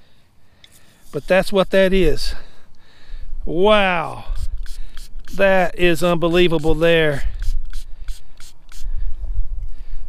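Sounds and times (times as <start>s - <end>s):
brush scrubbing metal: 0.7s - 1.8s.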